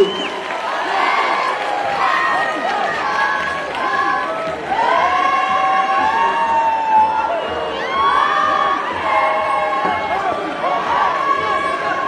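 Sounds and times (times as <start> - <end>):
young voices chanting and calling: 0.6 - 12.0.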